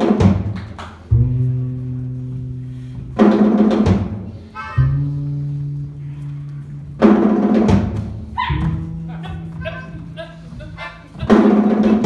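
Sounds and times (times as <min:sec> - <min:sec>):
short wind-instrument phrases: 0:04.3 - 0:07.0
held low bass note: 0:04.4 - 0:07.1.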